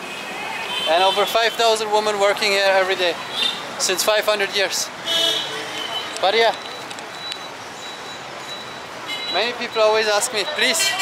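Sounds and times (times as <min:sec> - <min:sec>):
passing traffic: 0:00.0 - 0:11.0.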